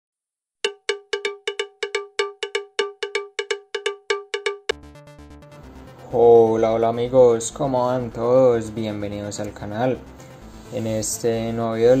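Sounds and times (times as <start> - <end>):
cowbell-like struck tone: 0.6 - 4.8.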